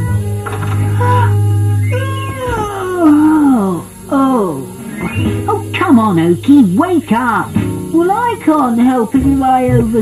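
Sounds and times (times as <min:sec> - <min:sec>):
background music low note: 0:00.0 - 0:10.0
cartoon character yawning: 0:01.1 - 0:03.8.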